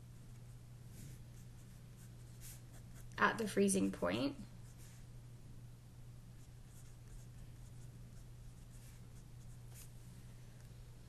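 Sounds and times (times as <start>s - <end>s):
low electrical hum: 0.0s - 11.0s
pencil scratching on paper: 1.0s - 3.2s, 6.4s - 9.9s.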